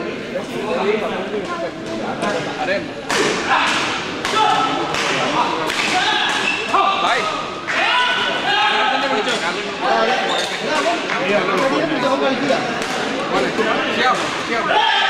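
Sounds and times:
shoes squeaking on court floor: 6.4s - 6.8s, 10.1s - 10.8s.

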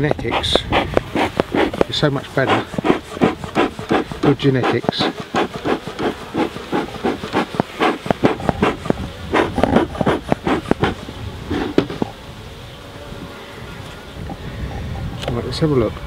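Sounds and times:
bellows smoker puffing: 0.0s - 11.8s
honeybees buzzing: 0.0s - 14.6s.

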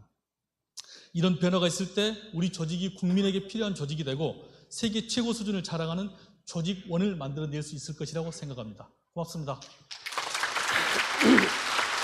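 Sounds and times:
audience applauding: 9.9s - 12.0s
crowd laughing: 10.4s - 12.0s.

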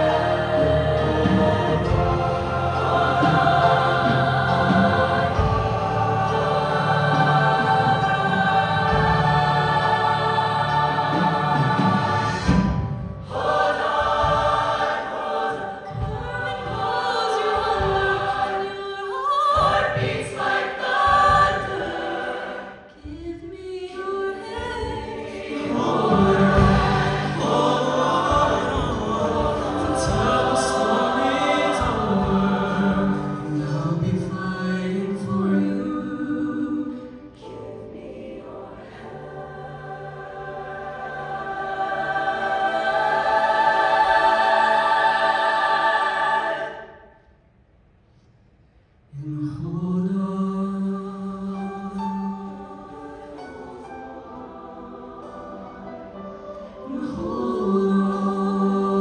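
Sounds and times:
choir singing in harmony: 0.0s - 48.3s, 49.1s - 59.0s.

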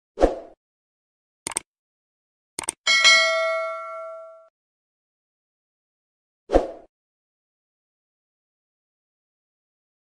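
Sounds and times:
quick double clicks: 1.5s - 1.7s, 2.6s - 2.8s
bell-like notification ding: 2.9s - 4.5s.

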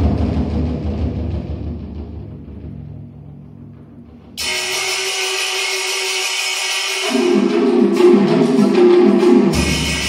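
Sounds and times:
hissing metallic percussion: 4.4s - 10.0s.

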